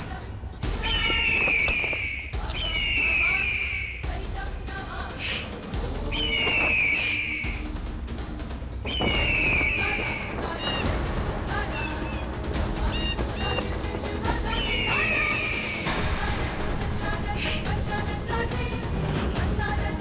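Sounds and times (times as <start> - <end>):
dramatic music score: 0.0 - 20.0.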